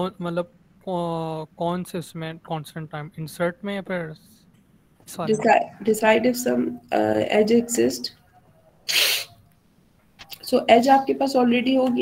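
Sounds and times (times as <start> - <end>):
person's sharp burst of breath: 8.9 - 9.4.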